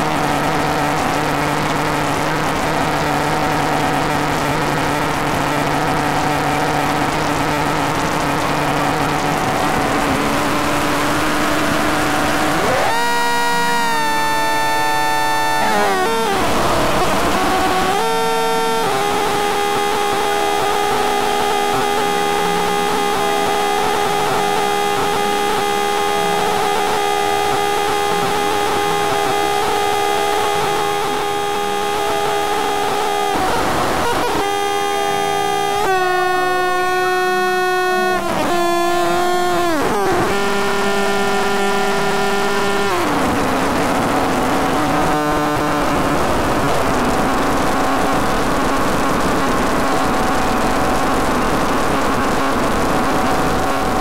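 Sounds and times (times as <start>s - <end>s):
synthesizer drones: 0.0s - 54.0s.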